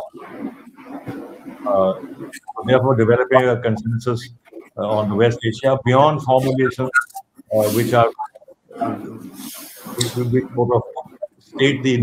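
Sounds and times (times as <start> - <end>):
man saying uhh: 6.2 - 8.2, 8.8 - 10.9
breathy hiss: 7.5 - 8.1, 9.0 - 10.7.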